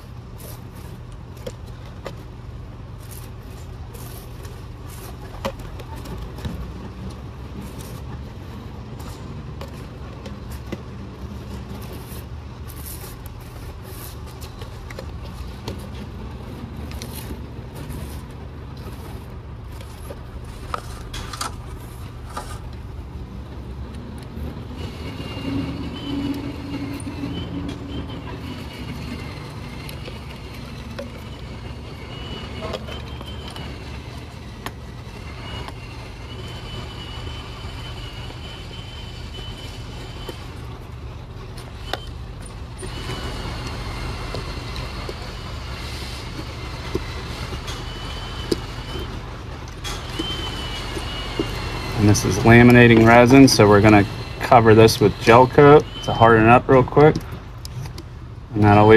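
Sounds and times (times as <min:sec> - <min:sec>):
high wavering whine: 0:24.1 - 0:57.1.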